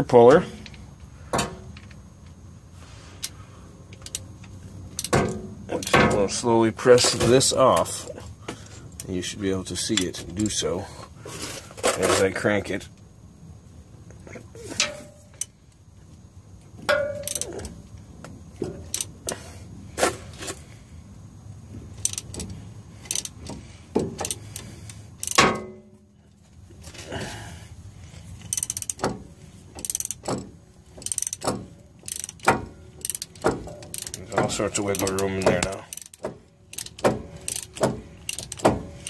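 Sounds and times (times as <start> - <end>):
metallic clicks of cranked screw: 3.2 - 6.0, 17.2 - 17.7, 22.0 - 23.6, 24.2 - 25.5, 28.4 - 29.2, 29.8 - 39.0.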